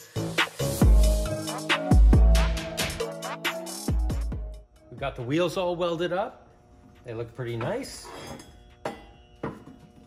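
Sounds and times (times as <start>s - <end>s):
faint background music: 4.6s - 10.0s.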